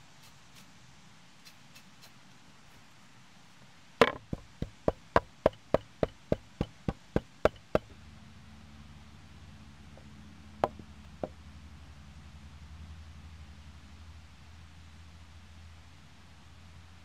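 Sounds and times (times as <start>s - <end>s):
knife chopping herbs on wooden board: 4.0s - 7.9s, 10.6s - 11.3s.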